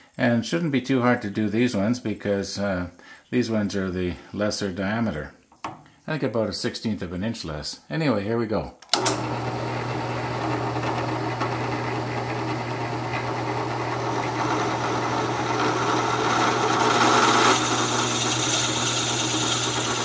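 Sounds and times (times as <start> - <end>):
drill press motor hum: 8.9 - 20.0
drill bit boring into wood: 9.0 - 20.0.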